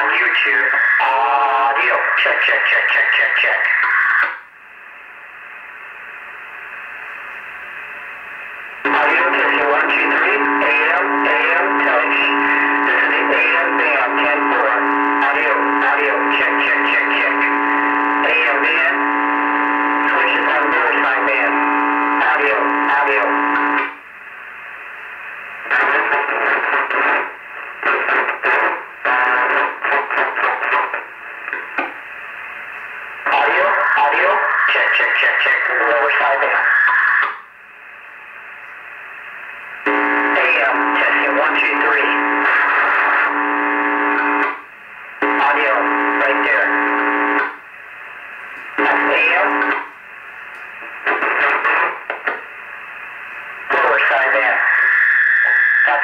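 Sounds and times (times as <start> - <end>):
garbled radio transmission: 0.0 - 4.5, 8.6 - 56.0
choppy radio signal bursts: 0.0 - 56.0
radio open-channel hiss: 0.0 - 56.0
steady low radio tone: 0.0 - 56.0.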